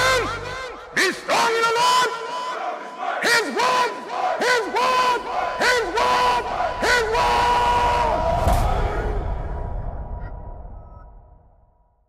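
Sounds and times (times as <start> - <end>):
group chanting in unison: 1.9 - 9.6
deep boom: 6.5 - 11.6.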